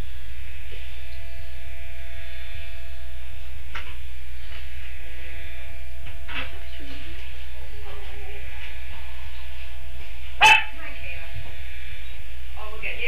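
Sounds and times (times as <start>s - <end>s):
low electrical hum and buzz: 0.0s - 13.0s.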